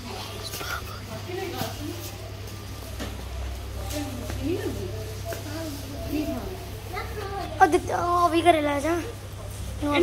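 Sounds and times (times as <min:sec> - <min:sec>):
indistinct voices talking quietly: 0:00.0 - 0:10.0.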